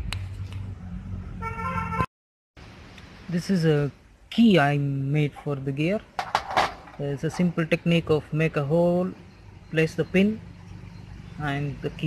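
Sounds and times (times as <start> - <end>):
vehicle horn toot: 1.4 - 2.1.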